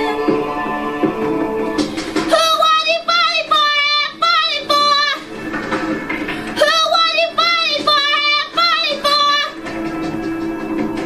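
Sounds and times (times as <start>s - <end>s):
high singing voice: 0.0s - 5.3s, 6.5s - 9.7s
backing music: 0.0s - 11.0s.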